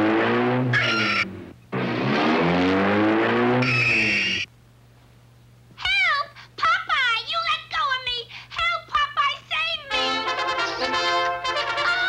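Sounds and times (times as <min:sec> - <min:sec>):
cartoon engine revving: 0:00.0 - 0:04.5
high squeal: 0:00.7 - 0:01.4, 0:03.6 - 0:04.5
woman's cartoon scream: 0:00.8 - 0:01.3.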